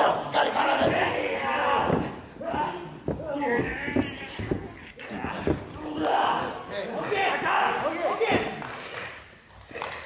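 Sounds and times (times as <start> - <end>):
men shouting and grunting: 0.0 - 8.8.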